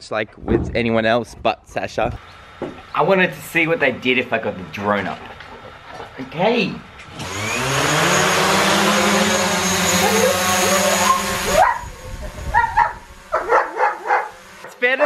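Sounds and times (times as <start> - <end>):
drone propellers whirring: 2.1 - 14.8
dog barking: 10.0 - 11.9, 12.5 - 14.4.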